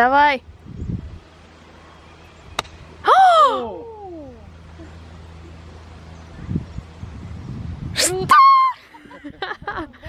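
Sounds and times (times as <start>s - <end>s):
golf club striking ball: 2.5s - 2.8s.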